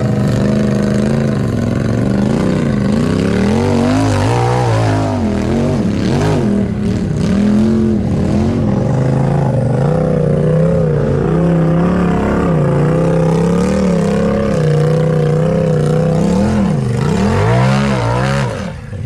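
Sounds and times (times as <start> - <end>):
off-road vehicle engine revving: 0.0 - 19.0.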